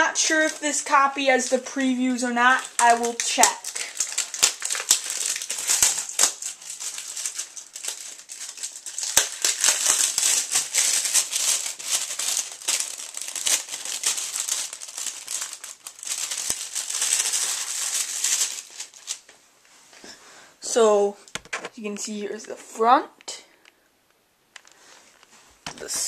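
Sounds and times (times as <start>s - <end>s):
plastic packaging crinkling: 0.0s - 19.4s.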